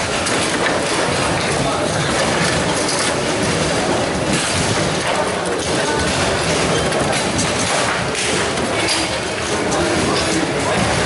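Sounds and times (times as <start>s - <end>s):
table football rattling: 0.0s - 11.0s.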